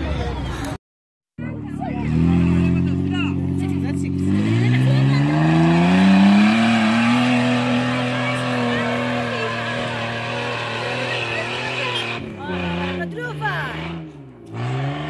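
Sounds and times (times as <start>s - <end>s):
suv engine working hard: 1.4s - 13.8s
voices calling out: 1.4s - 15.0s.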